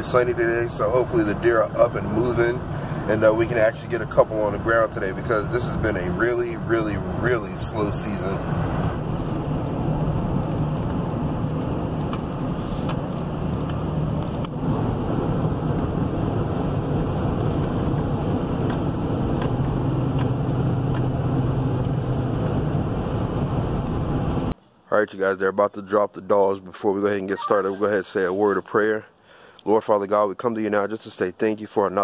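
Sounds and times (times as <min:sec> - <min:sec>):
engine noise inside vehicle: 0:00.0 - 0:24.6
tyre road noise: 0:00.0 - 0:24.6.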